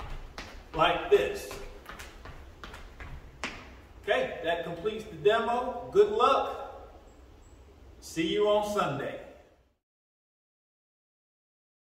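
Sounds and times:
feet thudding on rubber floor: 0:00.0 - 0:03.9.

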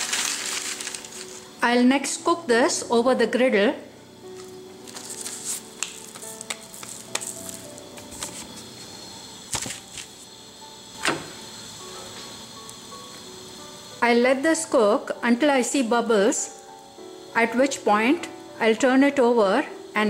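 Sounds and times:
soft background music: 0:00.0 - 0:20.0.

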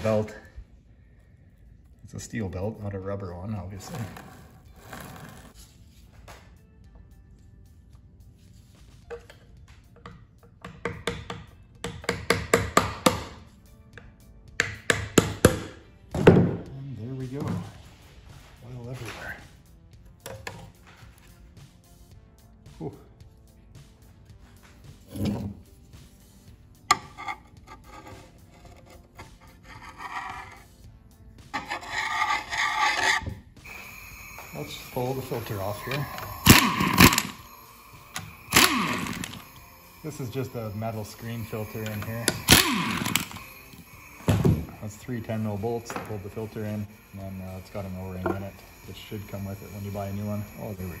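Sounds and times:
hammer knocking on metal tool: 0:10.0 - 0:13.4
screwdriver scraping on metal magnet: 0:26.9 - 0:30.7, 0:31.5 - 0:33.2.

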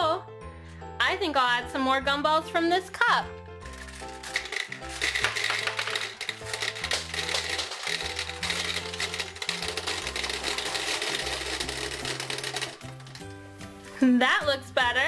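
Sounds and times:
gumballs clattering: 0:03.6 - 0:13.4.

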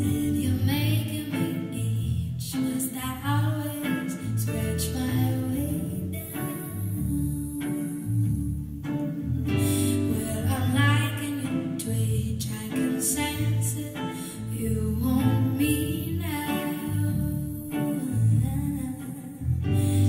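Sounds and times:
band with guitar and bass: 0:00.0 - 0:20.0
woman singing soulful song: 0:00.0 - 0:20.0.

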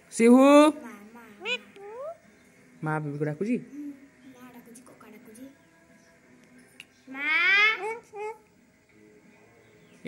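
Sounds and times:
parakeet squeaky calls: 0:01.4 - 0:02.2.

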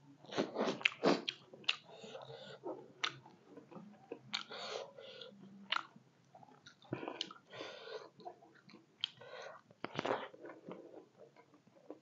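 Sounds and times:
close chewing and crunching: 0:00.2 - 0:12.0.

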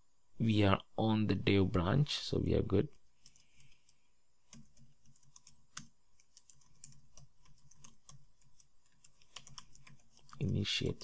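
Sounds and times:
typing on computer keyboard: 0:03.2 - 0:11.0.

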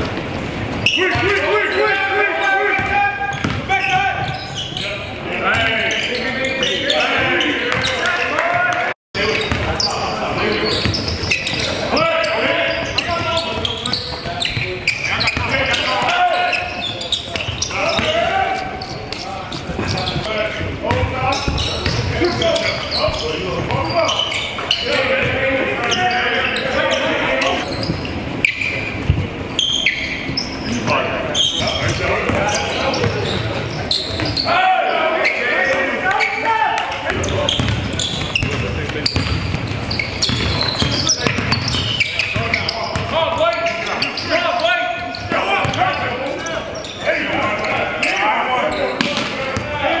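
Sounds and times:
players calling out and chattering: 0:00.0 - 0:50.0.

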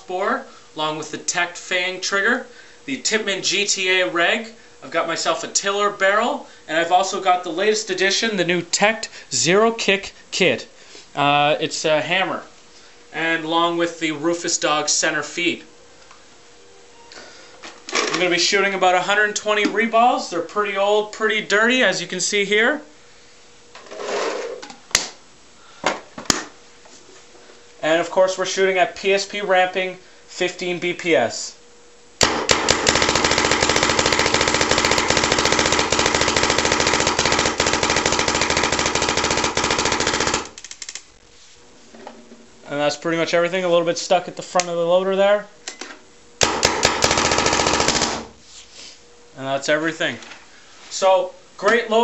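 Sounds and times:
paintball marker rapid firing: 0:32.2 - 0:40.9, 0:46.4 - 0:48.3
sharp clicks: 0:32.2 - 0:41.1.

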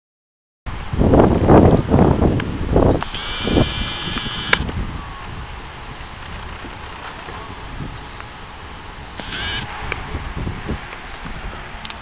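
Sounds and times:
wind buffeting microphone: 0:00.7 - 0:12.0.

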